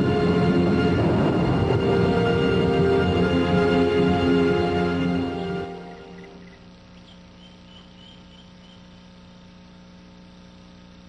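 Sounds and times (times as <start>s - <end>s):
steady low hum: 0.0s - 11.0s
faint high chirps: 6.0s - 9.2s.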